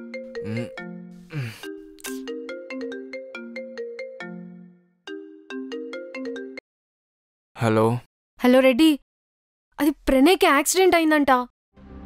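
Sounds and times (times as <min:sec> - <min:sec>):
phone ringtone chiming tune: 0:00.0 - 0:06.6.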